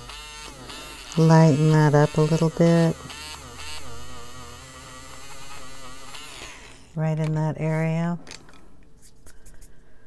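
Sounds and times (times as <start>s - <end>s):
electric eraser motor whirring: 0.0s - 7.0s.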